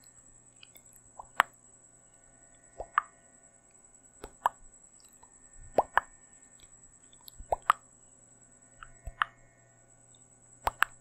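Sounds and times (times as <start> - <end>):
faint high whine: 0.0 - 11.0
low hum: 0.0 - 11.0
wet mouth pops and clicks: 4.2 - 7.8, 10.6 - 11.0.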